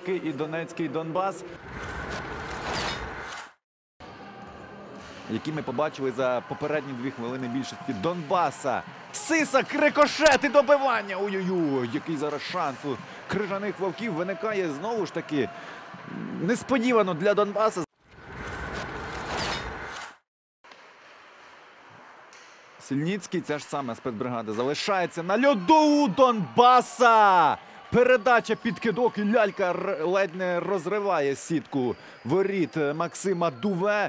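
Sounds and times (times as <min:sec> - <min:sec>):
faint ice rink ambience: 0:04.0 - 0:20.0, 0:20.7 - 0:34.0
ice hockey rink background noise: 0:20.7 - 0:34.0.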